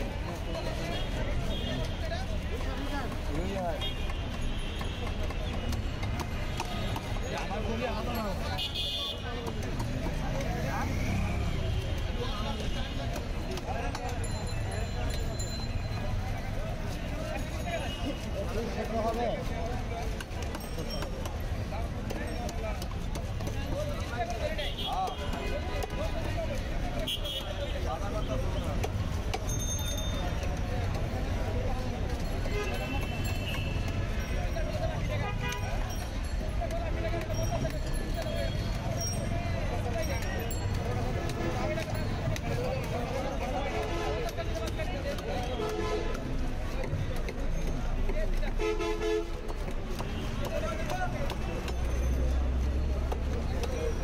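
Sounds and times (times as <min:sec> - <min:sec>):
busy voices: 0:00.0 - 0:54.0
street noise: 0:00.0 - 0:54.0.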